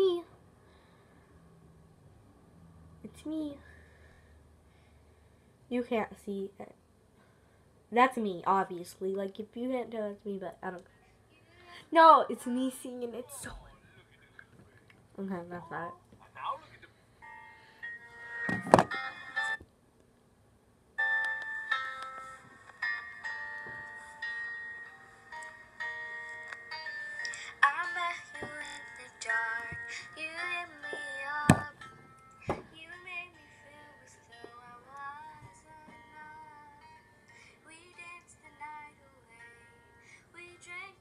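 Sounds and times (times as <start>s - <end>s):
woman singing: 27.2s - 31.8s, 32.5s - 36.9s, 37.6s - 41.0s.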